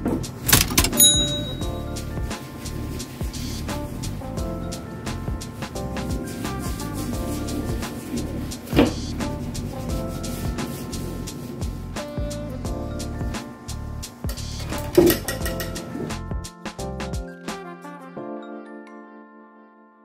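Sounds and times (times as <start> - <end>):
instrumental background music: 0.0 - 20.0.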